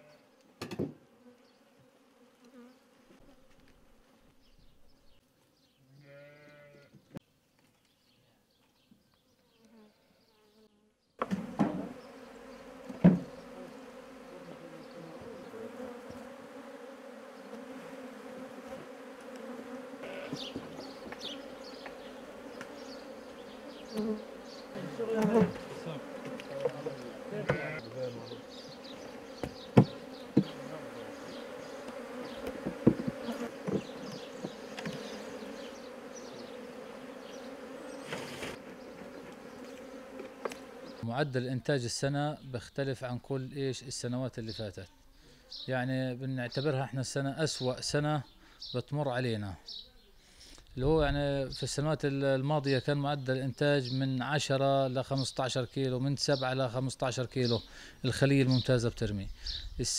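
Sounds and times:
honeybees buzzing: 0:00.0 - 0:06.8, 0:09.2 - 0:41.1, 0:50.4 - 0:59.8
wooden hive frames knocking: 0:00.6 - 0:01.0, 0:11.2 - 0:12.0, 0:12.7 - 0:13.5, 0:20.3 - 0:22.8, 0:24.8 - 0:27.7, 0:28.9 - 0:35.2.

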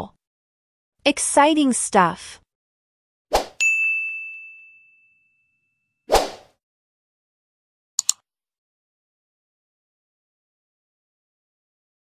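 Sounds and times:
bright ding: 0:03.6 - 0:05.6.

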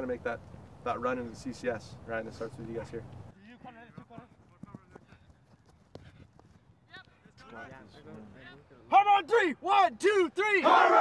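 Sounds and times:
team shouting chant: 0:09.2 - 0:11.0.

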